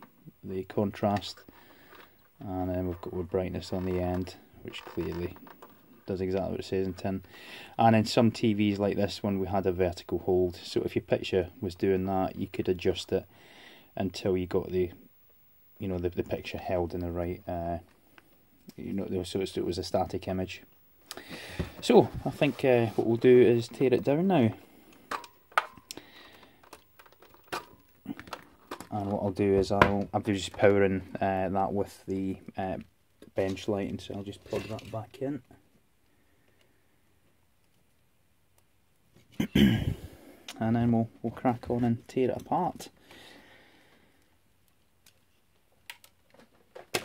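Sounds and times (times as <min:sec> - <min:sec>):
faint hiss: 0:00.0 - 0:38.2, 0:38.8 - 0:45.8
plastic connectors clicking: 0:25.0 - 0:29.2, 0:44.7 - 0:47.0
small clicks: 0:44.6 - 0:47.0.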